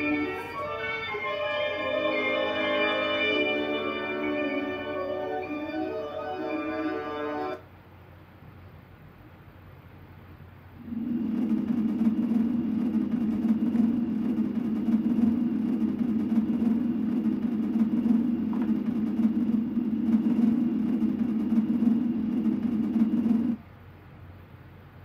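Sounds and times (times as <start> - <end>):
low hum through tv speaker: 0.0 - 25.0.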